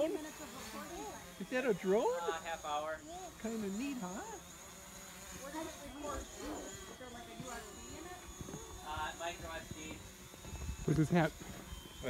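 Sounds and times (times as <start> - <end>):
drone buzzing overhead: 0.0 - 12.0.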